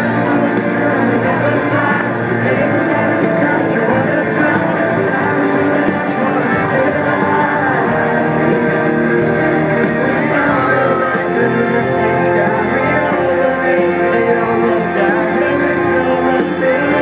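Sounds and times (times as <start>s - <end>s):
drums: 0.0s - 17.0s
strummed electric guitars: 0.0s - 17.0s.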